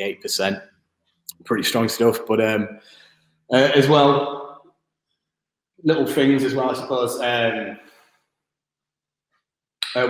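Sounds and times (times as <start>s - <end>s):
man talking: 0.0s - 0.6s, 1.3s - 2.8s, 3.5s - 4.4s, 5.8s - 7.8s.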